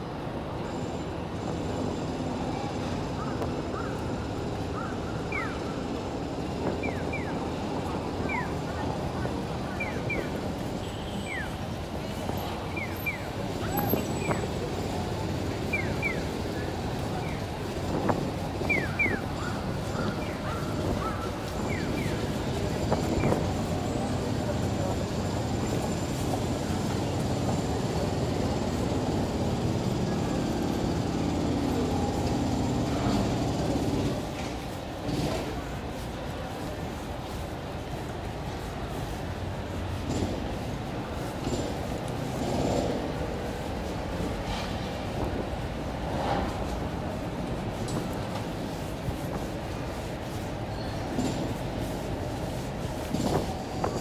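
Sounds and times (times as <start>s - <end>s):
murmur of crowd voices: 0.0s - 54.0s
traffic: 0.0s - 54.0s.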